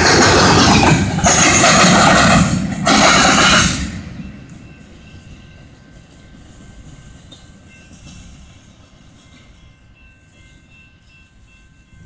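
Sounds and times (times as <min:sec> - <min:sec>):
freight train rumbling by: 0:00.0 - 0:12.0.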